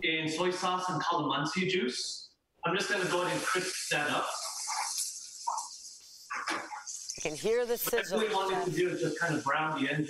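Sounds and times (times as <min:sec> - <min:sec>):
tofu sizzling in a frying pan: 0:02.8 - 0:07.3.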